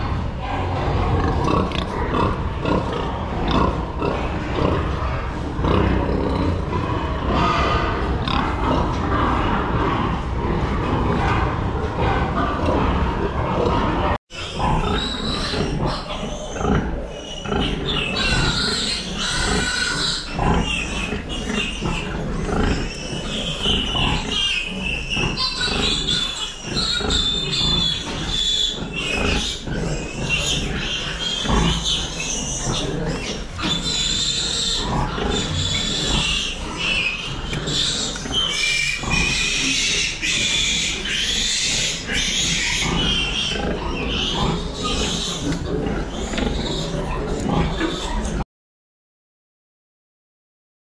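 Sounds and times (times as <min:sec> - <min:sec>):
pig grunting: 0:00.0 - 0:48.4
piglets squealing: 0:00.7 - 0:09.8, 0:14.4 - 0:48.4.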